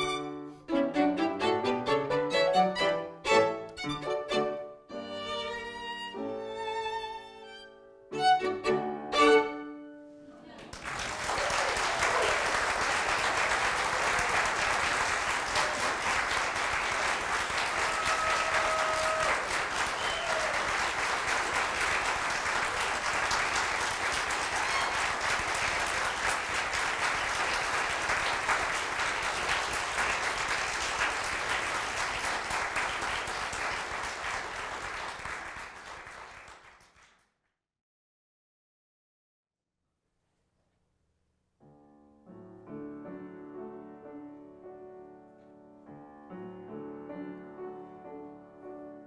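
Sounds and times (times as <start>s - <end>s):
audience applauding: 10.6s - 37.2s.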